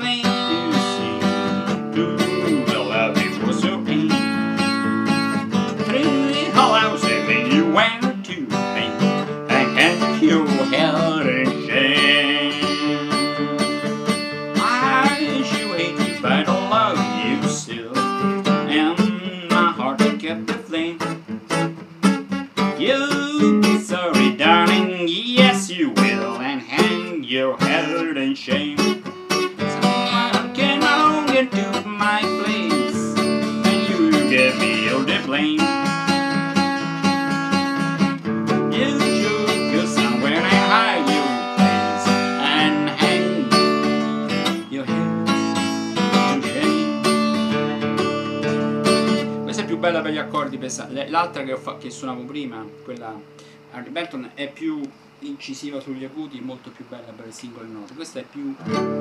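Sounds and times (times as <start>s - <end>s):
acoustic guitar strummed: 0.0s - 59.0s.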